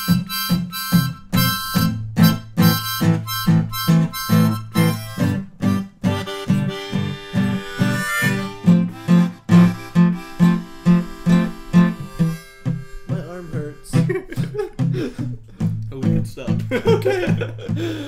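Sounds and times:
blues harmonica: 0:00.0 - 0:16.7, 0:17.4 - 0:18.0
strummed acoustic guitar: 0:00.0 - 0:18.0.

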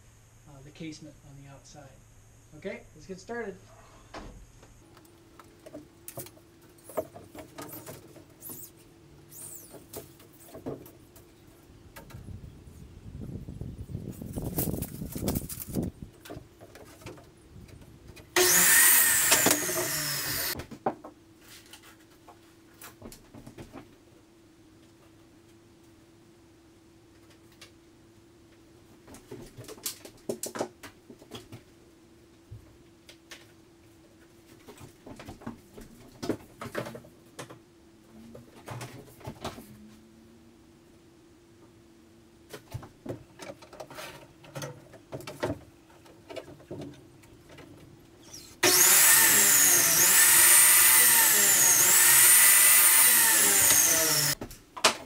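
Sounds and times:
chop saw cutting trim: 0:18.4 - 0:20.6, 0:48.3 - 0:54.4.

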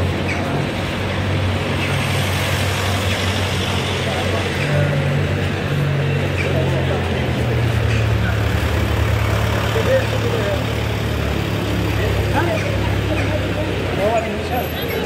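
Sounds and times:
car engines in traffic: 0:00.0 - 0:15.0
passers-by talking: 0:00.0 - 0:15.0.

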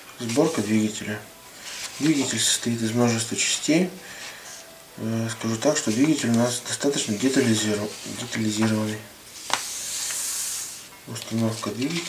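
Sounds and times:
hand rubbing paper: 0:01.6 - 0:03.2, 0:05.4 - 0:12.0.

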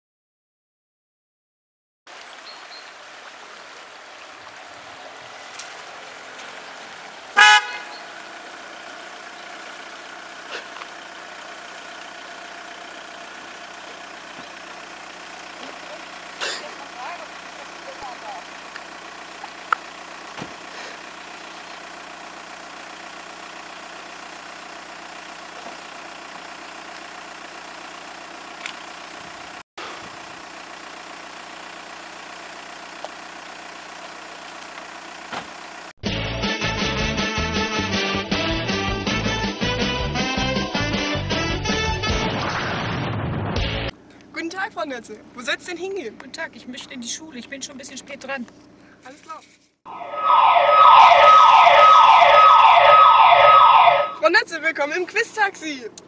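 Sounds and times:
car horn honk: 0:07.3 - 0:08.2, 0:49.9 - 0:54.2.

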